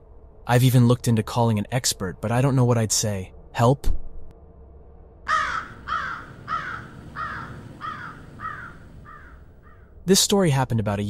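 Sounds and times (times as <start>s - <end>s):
bird calling: 5.3s - 10.0s.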